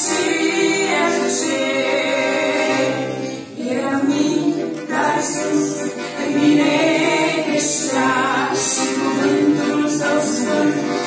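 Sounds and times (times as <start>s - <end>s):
piano accordion: 0.0s - 11.0s
women singing a hymn: 0.0s - 11.0s.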